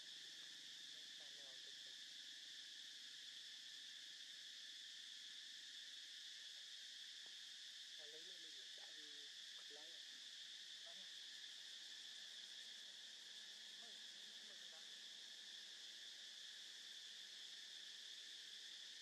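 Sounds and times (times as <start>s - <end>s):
insects buzzing drone: 0.0s - 19.0s.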